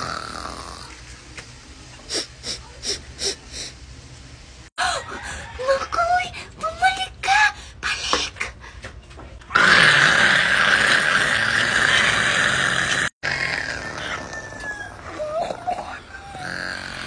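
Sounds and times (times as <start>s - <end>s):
raspy zombie growling: 0.0s - 1.0s, 9.5s - 15.6s, 16.2s - 17.0s
quiet growls and moans: 9.6s - 17.0s.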